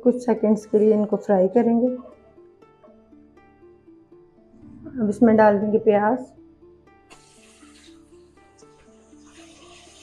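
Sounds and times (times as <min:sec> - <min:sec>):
plucked-string background music: 0:00.0 - 0:10.0.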